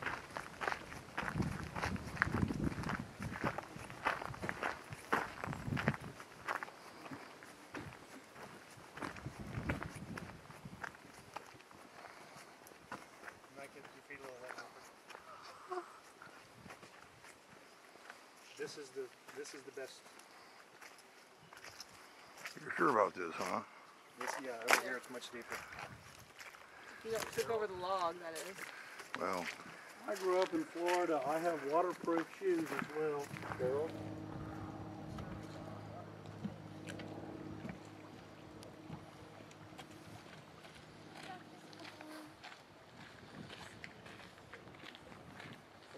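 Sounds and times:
footsteps on dirt trail: 0.0s - 22.7s, 24.2s - 45.9s
low steady hum: 32.8s - 42.8s.

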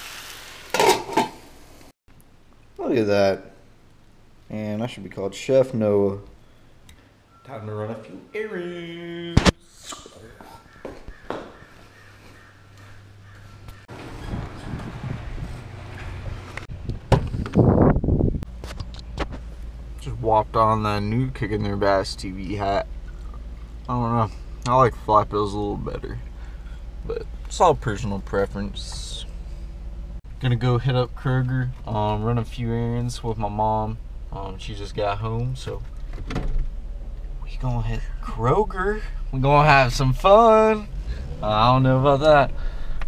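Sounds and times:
food sizzling in frying pan: 0.0s - 1.9s
footsteps: 9.4s - 17.4s
rustling and bumps climbing in: 13.3s - 19.8s
wind noise: 14.0s - 19.4s.

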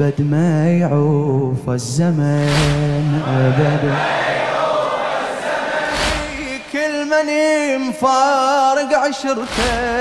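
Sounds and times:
choir holding long note: 3.5s - 6.5s.

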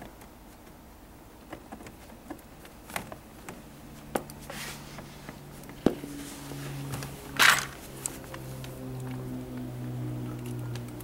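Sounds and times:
scraping rustle: 4.0s - 8.6s.

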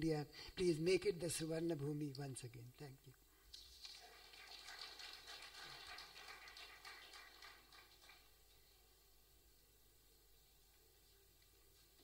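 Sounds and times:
audience applauding: 3.8s - 8.4s.

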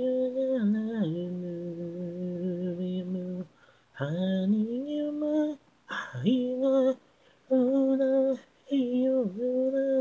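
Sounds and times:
person singing a cappella: 0.0s - 10.0s.

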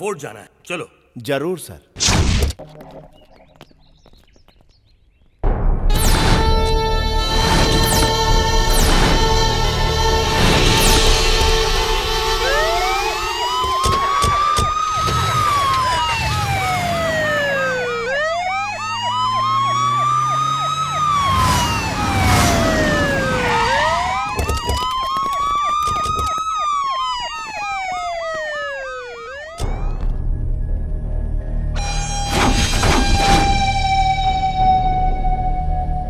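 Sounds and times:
wailing siren: 5.9s - 36.0s
warbling siren: 5.9s - 36.0s.

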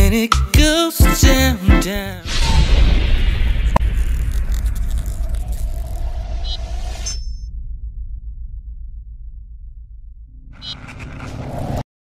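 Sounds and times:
deep steady rumble: 2.4s - 11.5s.

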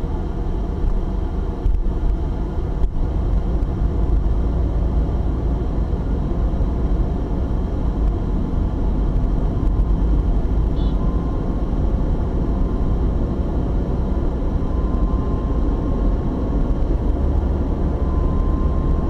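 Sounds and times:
car engine and tyre rumble: 0.0s - 19.0s.

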